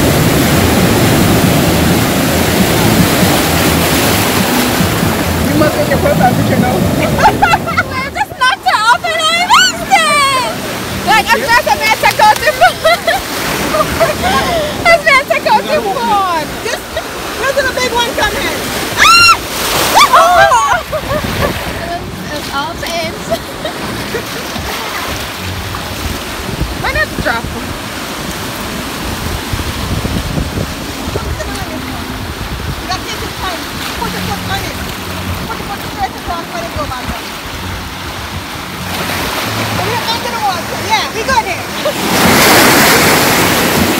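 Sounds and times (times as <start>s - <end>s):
sea surf washing over rocks: 0.0s - 43.9s.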